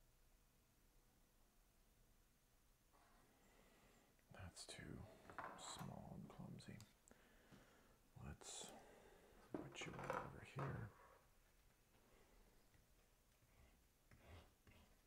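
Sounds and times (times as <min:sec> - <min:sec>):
man whispering: 0:04.2 - 0:07.1, 0:08.1 - 0:11.4.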